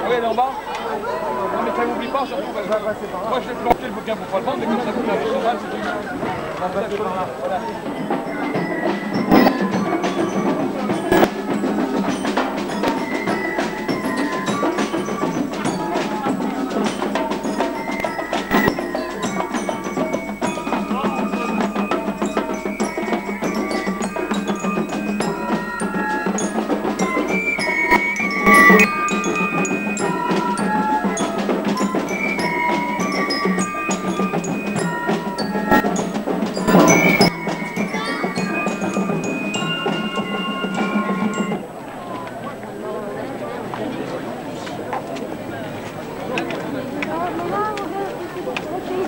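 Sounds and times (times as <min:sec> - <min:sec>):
marching band playing: 0:07.4 - 0:41.7
high melody of held notes: 0:07.5 - 0:41.7
snare drums beating: 0:08.1 - 0:41.6.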